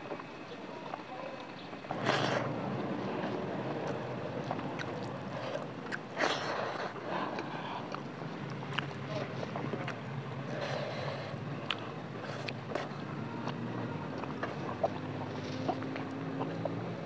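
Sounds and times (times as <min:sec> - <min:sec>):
chewing and mouth sounds: 0:00.8 - 0:17.0.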